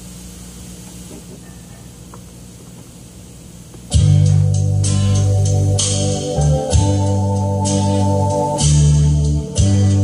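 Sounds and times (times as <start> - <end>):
organ accompaniment: 3.9 - 10.0.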